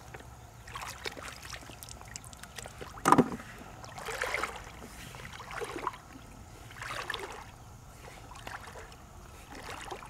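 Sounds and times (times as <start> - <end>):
pond water sloshing: 0.0 - 10.0
water splash: 0.7 - 6.1, 6.7 - 7.5.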